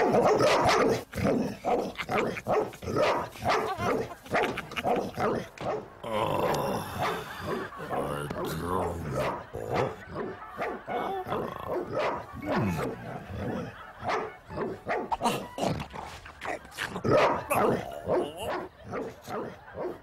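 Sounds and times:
cartoon dog barking: 0:00.0 - 0:20.0.

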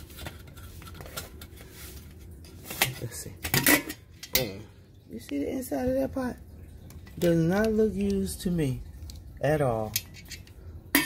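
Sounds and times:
low steady hum: 0:00.0 - 0:11.0
metal lid clicks and scrapes: 0:02.8 - 0:04.6, 0:09.9 - 0:11.0.

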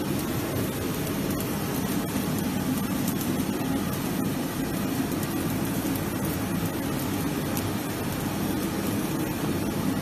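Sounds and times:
machine mechanical hum: 0:00.0 - 0:10.0.

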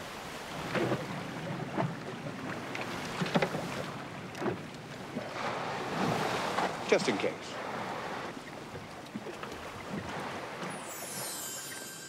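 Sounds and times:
sea noise: 0:00.0 - 0:12.0
wind: 0:00.0 - 0:12.0.

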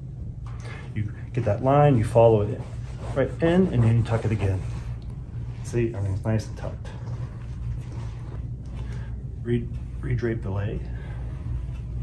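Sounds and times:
low ventilation hum: 0:00.0 - 0:12.0.

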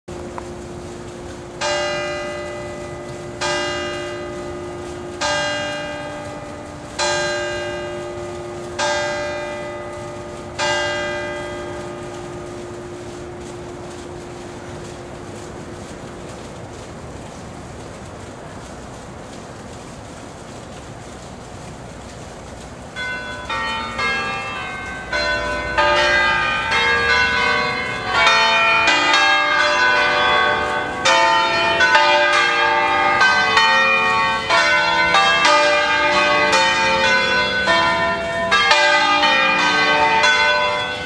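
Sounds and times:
church bell ringing: 0:00.1 - 0:16.6, 0:22.9 - 0:41.0.

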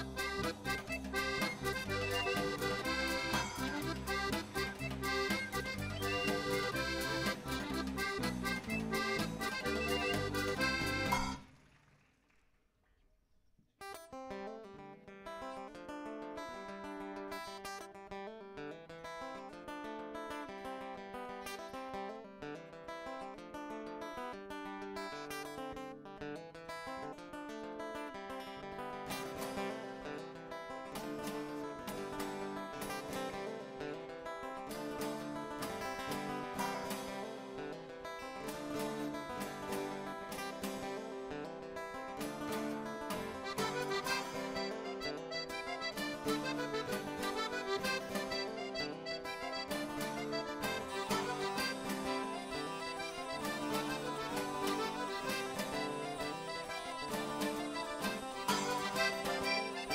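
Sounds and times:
acoustic guitar plucked tune: 0:00.0 - 0:11.6, 0:13.8 - 0:59.9.

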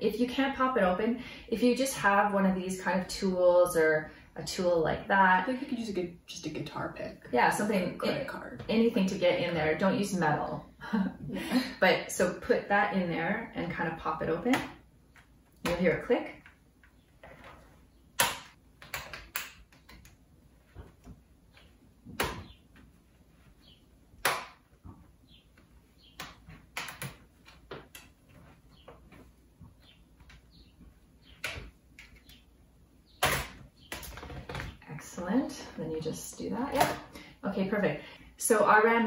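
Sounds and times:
plastic clips clicking and snapping: 0:18.2 - 0:20.2.

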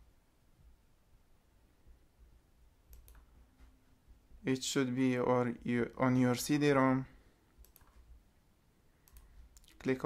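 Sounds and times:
computer mouse clicks: 0:02.9 - 0:03.3, 0:07.6 - 0:08.1, 0:09.0 - 0:09.8.

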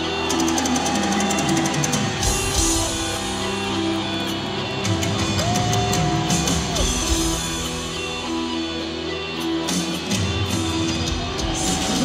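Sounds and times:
electric guitar line: 0:00.0 - 0:12.0.

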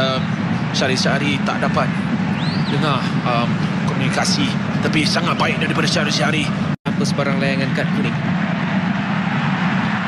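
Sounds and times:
stadium crowd rumbling din: 0:00.0 - 0:10.0.

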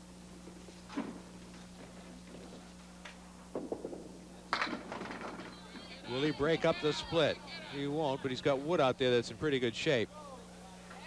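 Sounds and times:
electrical hum: 0:00.0 - 0:11.0
faint voices: 0:05.3 - 0:11.0.

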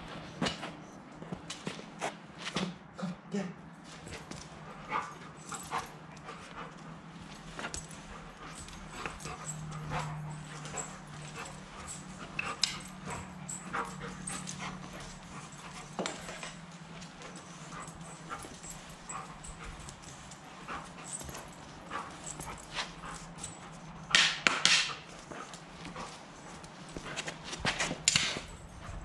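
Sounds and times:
steady low hum: 0:00.0 - 0:29.0
claws tapping on concrete: 0:24.1 - 0:25.5
hockey stick tapping concrete: 0:24.2 - 0:24.9.

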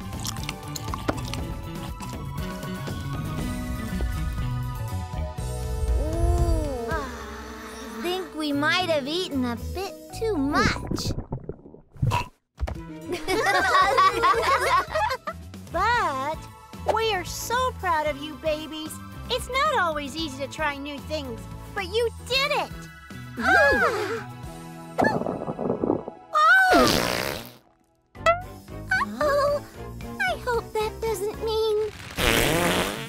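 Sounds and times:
children's background music: 0:00.0 - 0:10.9, 0:12.8 - 0:26.7, 0:28.2 - 0:31.9
cartoon stomach rumble: 0:10.9 - 0:12.4, 0:25.0 - 0:26.2
cartoon fart sounds: 0:11.9 - 0:12.4, 0:26.7 - 0:27.7, 0:31.9 - 0:33.0.

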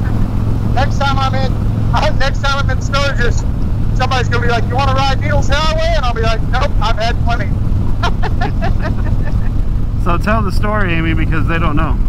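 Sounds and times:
faint voices: 0:00.0 - 0:12.0
motorcycle engine cruising: 0:00.0 - 0:12.0
wind and road noise: 0:00.0 - 0:12.0.

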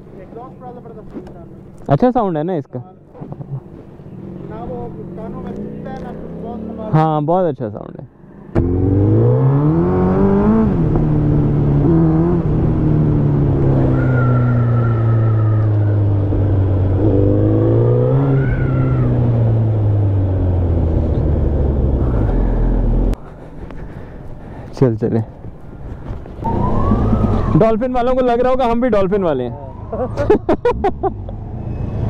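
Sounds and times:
road sound: 0:00.0 - 0:32.0
motorcycle engine running: 0:03.8 - 0:06.9.

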